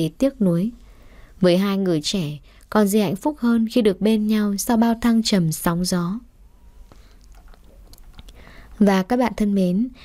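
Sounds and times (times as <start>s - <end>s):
woman speaking: 0.0s - 0.8s, 1.4s - 6.3s, 8.8s - 10.0s
soft intake of breath: 0.8s - 1.4s, 8.3s - 8.8s
mouth clicks: 6.9s - 8.4s.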